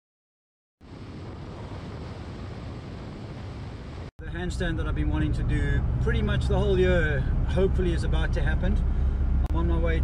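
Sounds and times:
car road and wind noise: 0.8 - 10.0.

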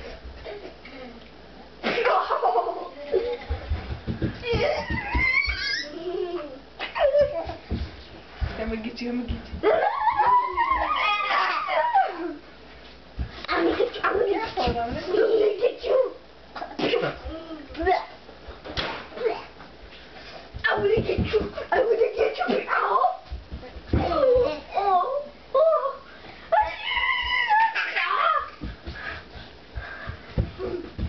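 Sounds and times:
young child squealing: 4.7 - 6.0, 9.6 - 12.4, 25.6 - 28.6.

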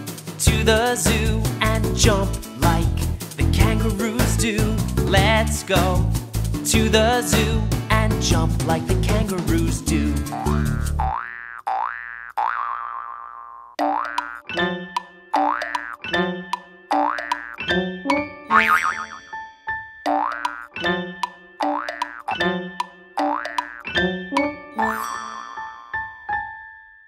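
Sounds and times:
children's song band: 0.0 - 10.4
cartoon boing effects: 10.4 - 14.6, 15.3 - 16.1, 16.9 - 17.6, 18.5 - 19.4, 20.1 - 20.7, 21.6 - 22.5, 23.2 - 23.9, 24.8 - 25.8.

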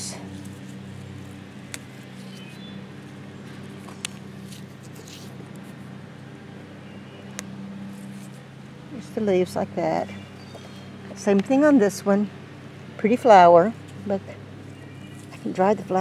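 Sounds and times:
motor humming: 0.0 - 16.0.

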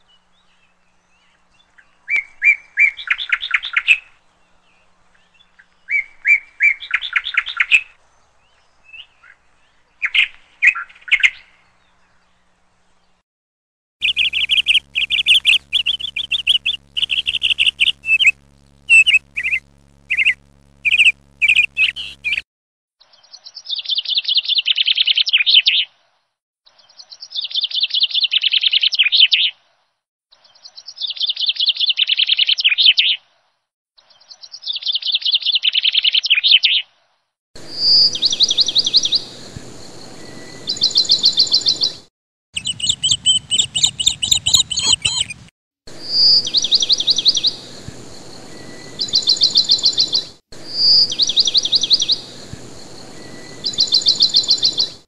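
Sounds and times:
birds chirping: 14.0 - 22.4, 37.6 - 42.0, 42.6 - 55.0
buzzy trilled bird calls: 14.0 - 22.4, 42.6 - 55.0
steady low hum: 14.0 - 22.4, 37.6 - 41.7, 42.6 - 55.0.

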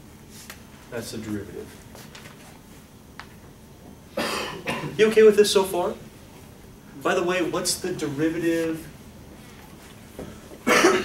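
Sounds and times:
cough: 4.2 - 5.0, 10.6 - 11.0.

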